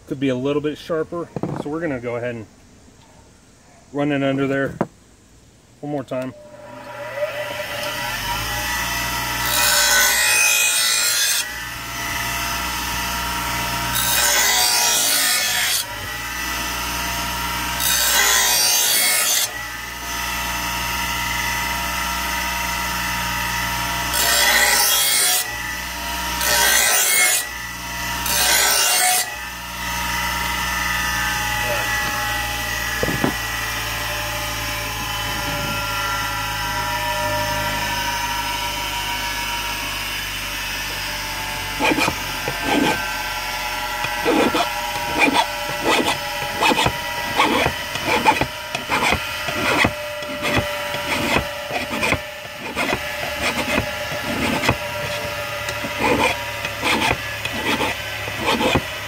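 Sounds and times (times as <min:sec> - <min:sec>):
bench grinder humming: 0:06.4 - 0:59.0
blade grinding on wheel: 0:06.9 - 0:19.8, 0:23.6 - 0:29.5, 0:41.4 - 0:59.0.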